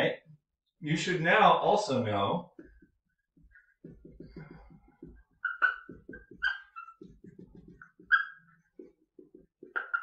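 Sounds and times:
marker scratching on whiteboard: 0:02.5 - 0:10.0
high marker squeaks: 0:04.5 - 0:10.0.

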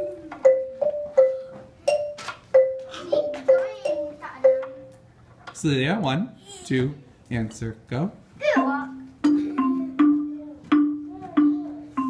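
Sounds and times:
wooden xylophone notes: 0:00.0 - 0:05.0, 0:08.6 - 0:12.0.

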